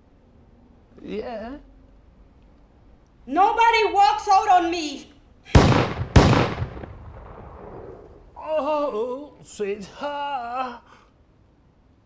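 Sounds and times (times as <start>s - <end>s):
gunshot: 5.5s - 8.3s.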